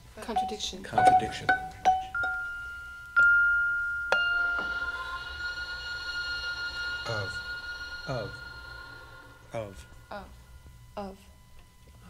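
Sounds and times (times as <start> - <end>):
metal percussion ringing: 0.3 - 11.3.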